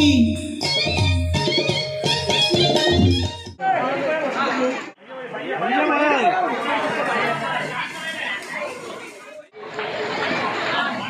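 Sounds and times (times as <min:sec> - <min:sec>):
crowd chattering: 0:02.5 - 0:11.0.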